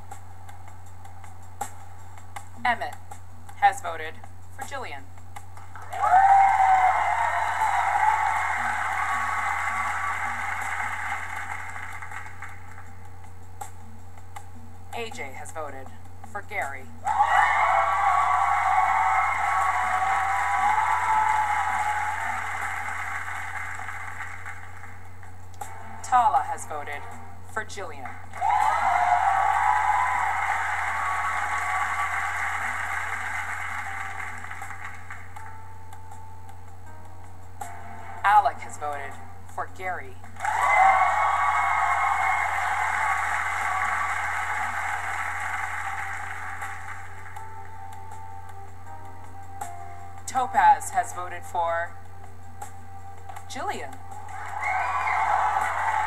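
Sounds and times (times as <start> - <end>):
crowd cheering and screaming: 5.8 - 11.5, 17.0 - 23.6, 28.3 - 34.0, 40.4 - 46.6, 54.2 - 56.0.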